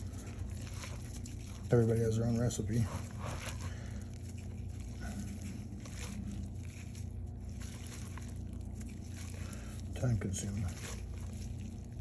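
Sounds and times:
steady low hum: 0.0 - 12.0
wet kneading of fish eggs: 0.0 - 12.0.

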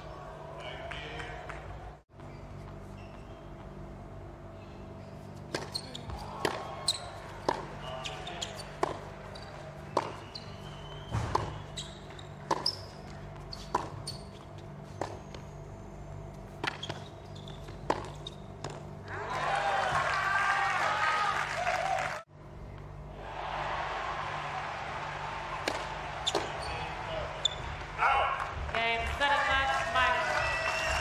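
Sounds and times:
racket hitting tennis ball: 5.4 - 14.1, 16.5 - 18.9, 25.6 - 26.8
tennis ball bouncing: 5.4 - 15.4, 16.4 - 19.0, 25.6 - 26.7.

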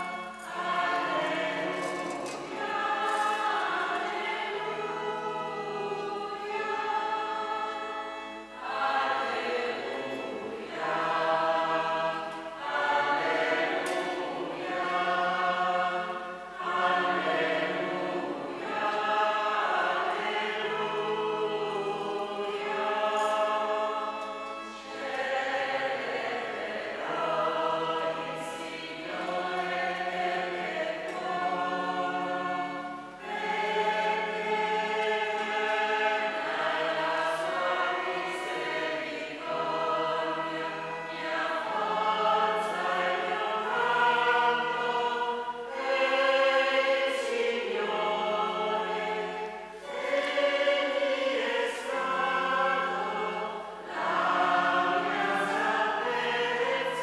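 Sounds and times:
choir singing: 0.0 - 57.0.

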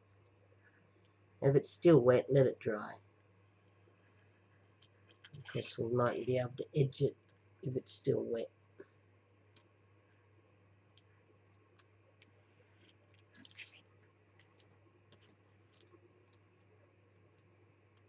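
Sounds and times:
low room hum: 0.0 - 18.0
faint clicks: 3.2 - 5.6, 10.9 - 16.7.

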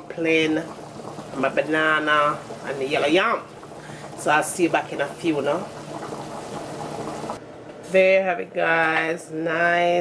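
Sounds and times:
pot simmering with bubbling hiss: 0.0 - 7.4.

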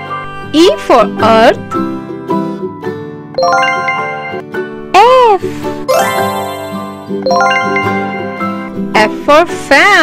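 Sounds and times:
children's background tune: 0.0 - 10.0.

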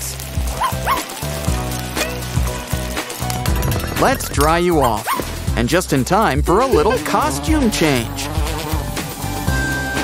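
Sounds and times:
small dog yipping: 0.6 - 1.1, 4.8 - 5.2.

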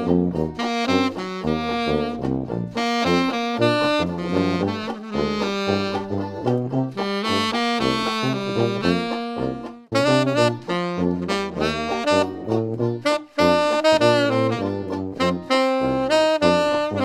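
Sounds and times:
dixieland backing track: 0.0 - 17.0
rhythmic bass line: 0.0 - 17.0
tenor saxophone jazz melody: 0.0 - 17.0.

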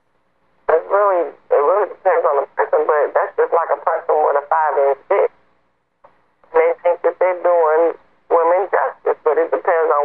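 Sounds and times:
person talking: 0.7 - 5.3, 6.5 - 10.0.

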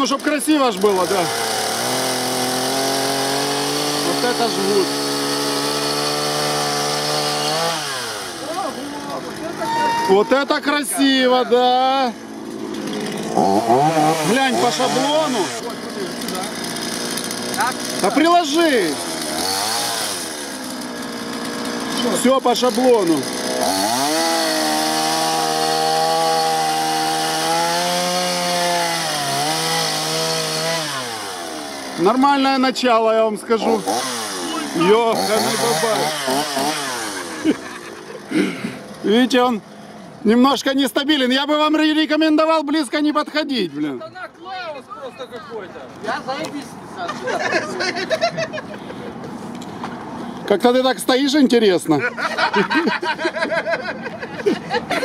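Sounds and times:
chainsaw cutting wood: 0.0 - 40.5.

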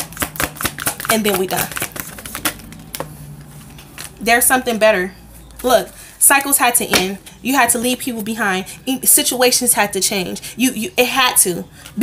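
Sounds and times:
cards being shuffled: 0.0 - 4.2.

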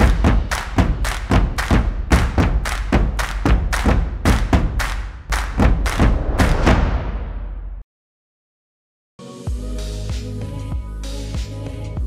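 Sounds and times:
deep bass: 0.0 - 7.8
fast percussive drum hits: 0.0 - 7.8
theme music: 5.3 - 7.8.

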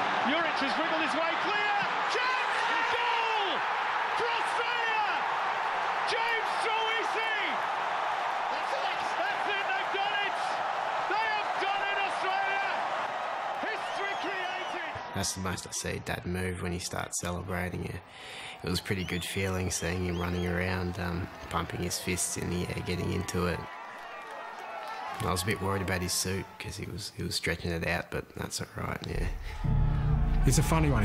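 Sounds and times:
stadium crowd cheering: 0.0 - 27.0, 29.1 - 31.0.

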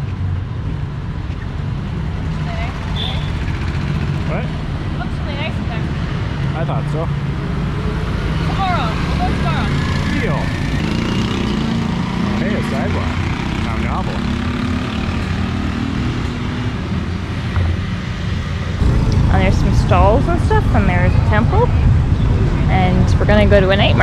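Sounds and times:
motorbikes and scooters passing: 0.0 - 24.0
low rumble: 18.8 - 24.0.

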